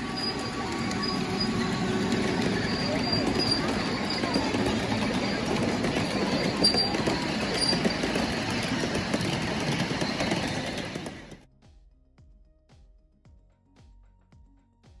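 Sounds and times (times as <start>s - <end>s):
miniature train rumbling on track: 0.0s - 11.5s.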